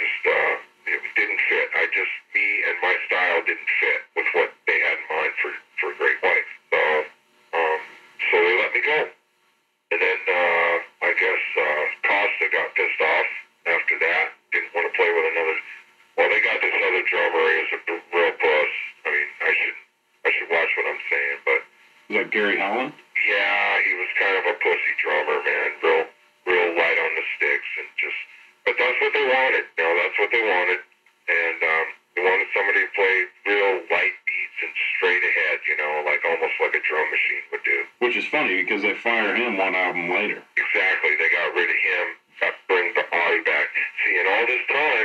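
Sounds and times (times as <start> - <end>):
man talking: 0.0 - 9.2, 9.9 - 45.0.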